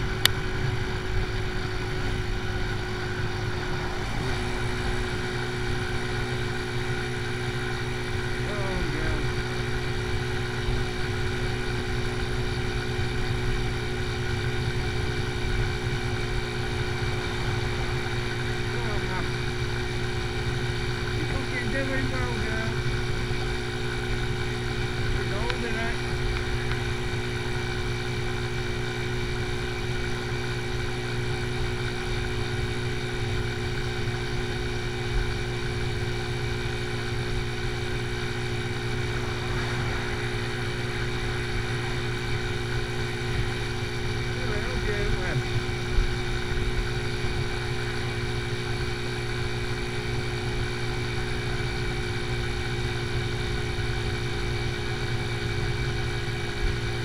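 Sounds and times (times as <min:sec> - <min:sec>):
motorcycle engine droning: 0:00.0 - 0:57.0
road and wind rumble: 0:00.0 - 0:57.0.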